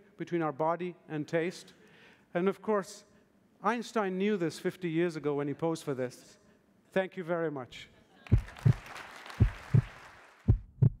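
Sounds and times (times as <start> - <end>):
heartbeat thumps: 8.3 - 8.8, 9.4 - 11.0.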